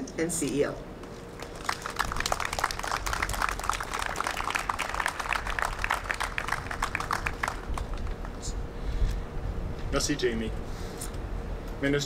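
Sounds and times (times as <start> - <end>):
audience applauding: 1.4 - 8.4.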